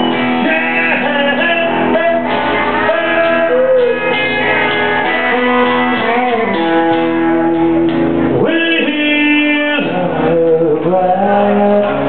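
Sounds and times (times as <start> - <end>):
country band playing: 0.0 - 12.0
guitar: 0.0 - 12.0
man singing: 0.0 - 12.0.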